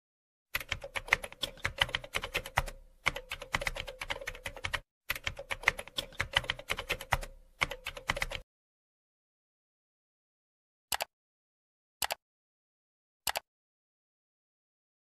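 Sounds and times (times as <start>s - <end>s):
keyboard typing: 0.5s - 8.4s, 10.9s - 11.1s, 13.3s - 13.5s.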